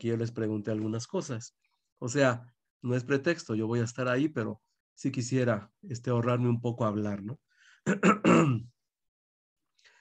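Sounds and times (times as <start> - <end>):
man clearing his throat: 7.9 - 8.7.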